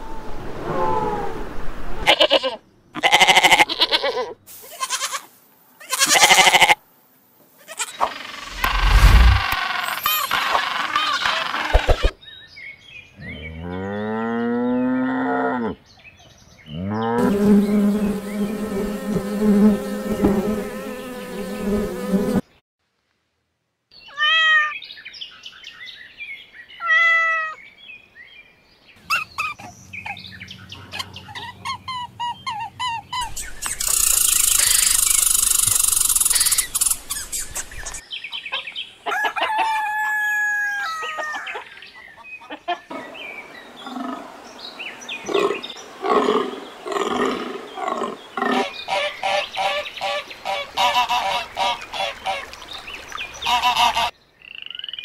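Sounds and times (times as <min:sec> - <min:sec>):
high hissing buzz: 0:08.3 - 0:10.2, 0:17.2 - 0:22.4
short animal calls and chirps: 0:33.2 - 0:38.0.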